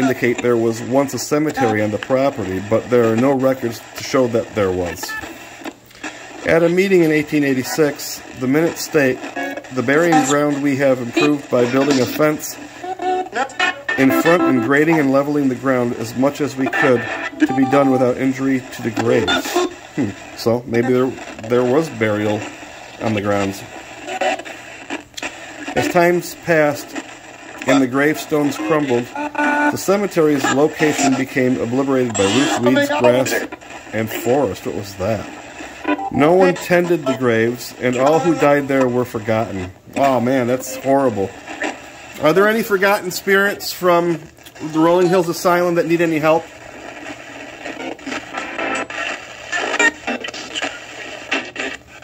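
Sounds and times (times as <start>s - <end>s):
chopped broadcast voices: 0.0s - 52.0s
radio static hiss: 0.0s - 52.0s.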